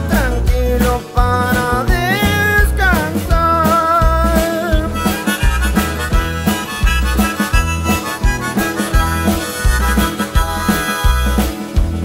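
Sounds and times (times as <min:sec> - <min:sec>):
folk band playing: 0:00.0 - 0:12.0
steady drum beat: 0:00.0 - 0:12.0
harmonica melody: 0:00.7 - 0:12.0.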